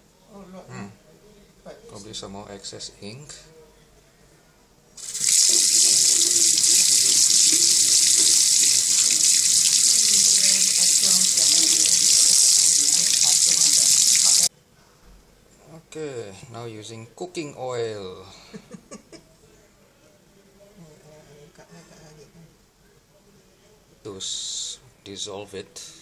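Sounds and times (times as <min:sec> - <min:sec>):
tap water splashing into sink: 0:05.0 - 0:14.5.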